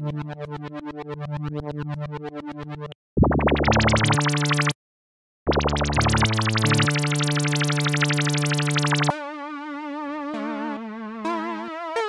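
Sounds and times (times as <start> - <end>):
pulsing buzzy synth bass note: 3.2 - 4.8, 5.5 - 9.1.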